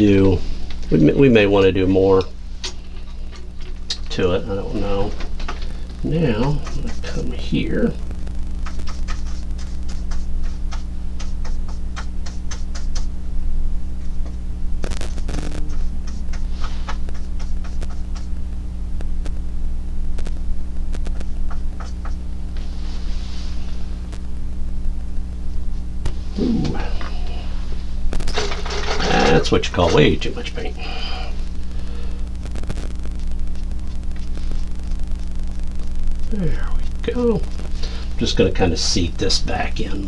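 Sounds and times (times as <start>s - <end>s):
electrical mains hum: 0.0s - 40.0s.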